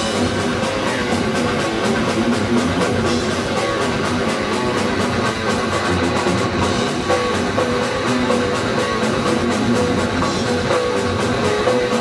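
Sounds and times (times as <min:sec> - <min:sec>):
distorted electric guitars: 0:00.0 - 0:12.0
drum kit: 0:00.0 - 0:12.0
electric bass: 0:00.0 - 0:12.0.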